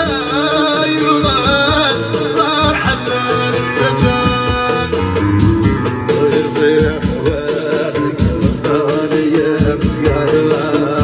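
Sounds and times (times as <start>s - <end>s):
instrumental backing with steady beat: 0.0s - 11.0s
man singing: 0.0s - 11.0s.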